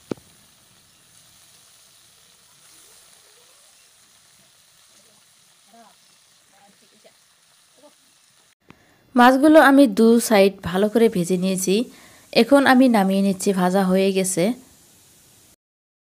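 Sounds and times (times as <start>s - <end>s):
fish sizzling in oil: 0.0s - 15.6s.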